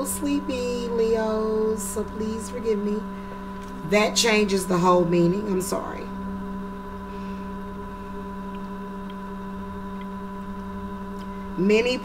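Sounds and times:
steady hum of sustained tones: 0.0s - 12.0s.

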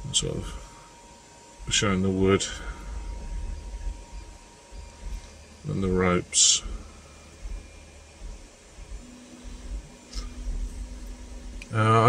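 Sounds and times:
faint steady hum: 0.0s - 12.0s
irregular low rumble: 1.5s - 11.7s.

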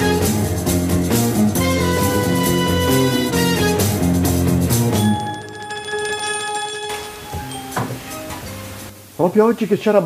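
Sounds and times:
bell-like ringing: 5.0s - 9.0s.

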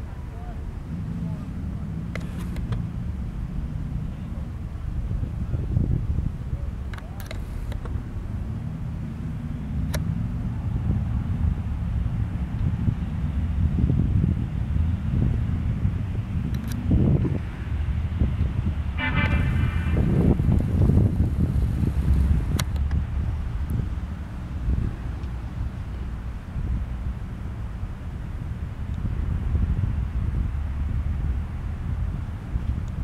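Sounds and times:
boat engines rumbling: 0.0s - 33.0s
wind on microphone: 0.0s - 33.0s
short horn toot: 19.0s - 20.3s.

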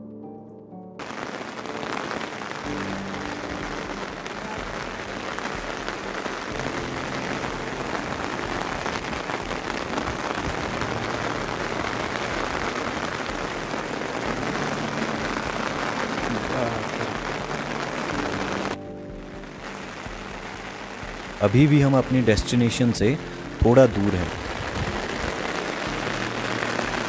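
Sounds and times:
rain on umbrellas: 1.0s - 27.0s.

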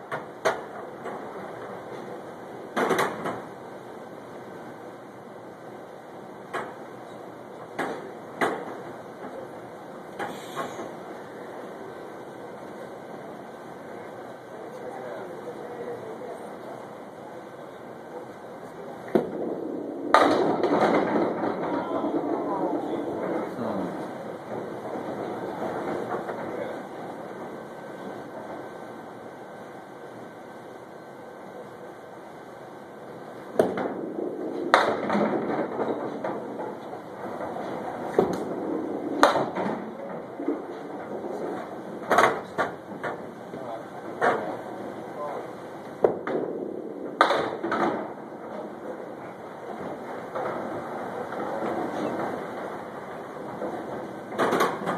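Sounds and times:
ball rolling down wooden lane: 19.1s - 26.5s, 33.6s - 43.2s
balls and pins clattering: 19.1s - 26.6s, 33.6s - 43.3s, 46.0s - 48.9s, 53.4s - 54.9s.

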